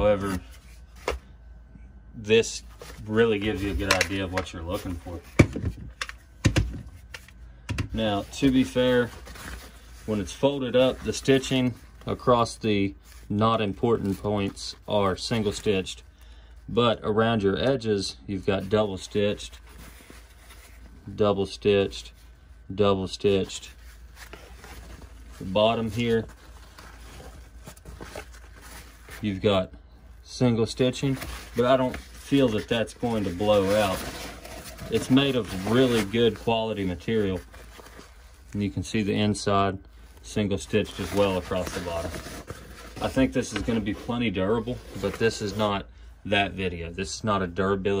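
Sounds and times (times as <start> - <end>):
fabric pouch rustling: 31.1 - 38.6, 40.8 - 45.6.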